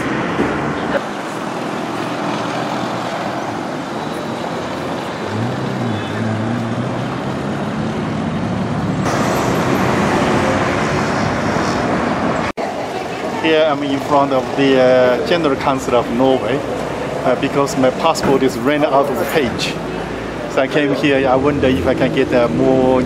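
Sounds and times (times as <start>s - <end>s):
passing cars and buses: 0.0s - 23.0s.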